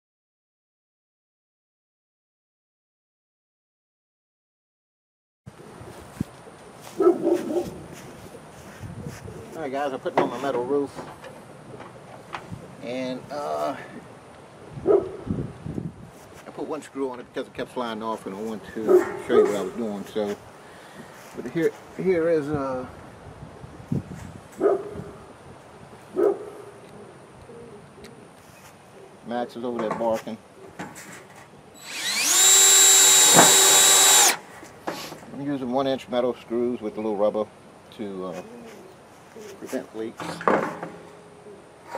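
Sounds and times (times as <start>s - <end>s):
dog barking: 7.0s - 7.8s, 14.8s - 15.2s, 18.9s - 19.5s, 24.6s - 25.1s, 26.2s - 26.7s
cordless drill driving screw: 31.8s - 34.5s.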